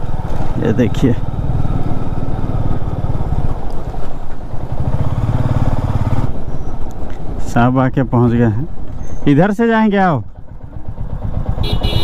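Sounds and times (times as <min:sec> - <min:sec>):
motorcycle engine running: 0:00.0 - 0:07.0, 0:09.6 - 0:12.0.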